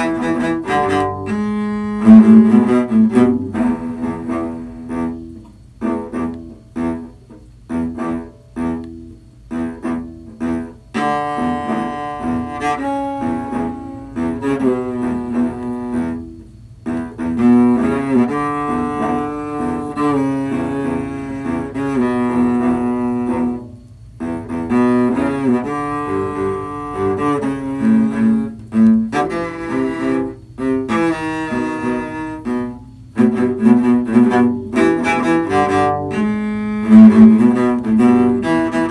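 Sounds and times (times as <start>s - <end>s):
cello ensemble playing: 0.0s - 38.9s.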